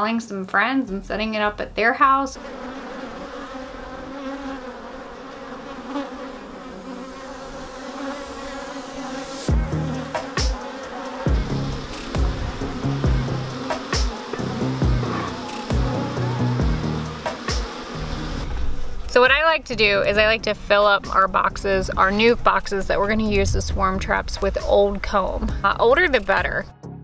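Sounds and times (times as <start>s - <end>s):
bees buzzing: 1.8s - 26.3s
music with thudding bass beat: 9.5s - 10.6s, 11.3s - 18.5s, 25.4s - 26.0s.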